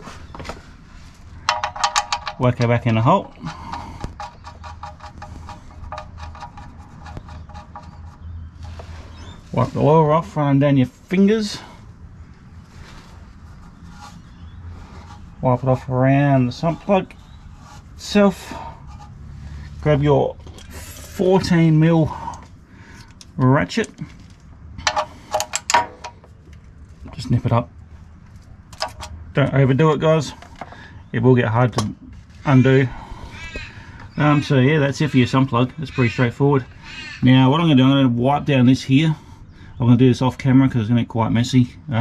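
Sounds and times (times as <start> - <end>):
low steady hum: 0.0 - 42.0
rapid light metallic ticking: 1.4 - 8.8.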